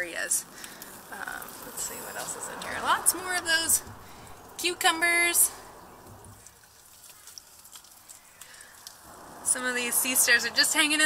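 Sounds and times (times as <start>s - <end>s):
soft ticks: 7.0s - 9.0s.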